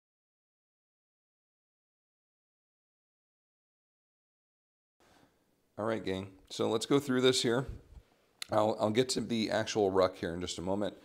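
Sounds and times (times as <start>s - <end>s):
man speaking: 5.8s - 11.0s.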